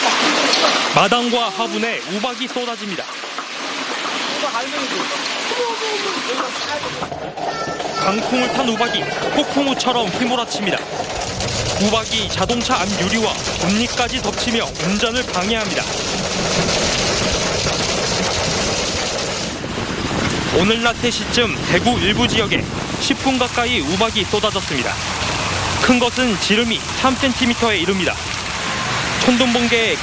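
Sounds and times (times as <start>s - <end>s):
hail striking concrete: 0.0s - 30.0s
road noise: 0.0s - 30.0s
faint person's voice: 7.4s - 9.3s.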